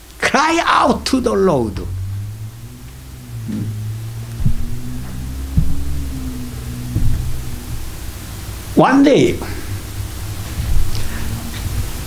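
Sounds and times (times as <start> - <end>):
steady low hum: 0.0 - 12.0
dull low thumps: 1.0 - 8.8, 9.4 - 12.0.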